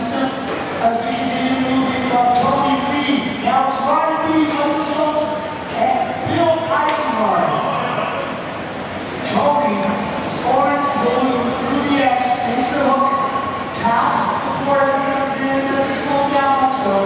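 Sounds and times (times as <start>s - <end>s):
indistinct voice echoing: 0.0s - 17.0s.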